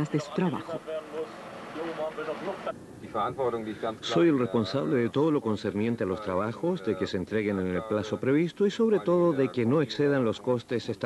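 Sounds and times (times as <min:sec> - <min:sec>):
faint men talking: 0:00.0 - 0:11.0.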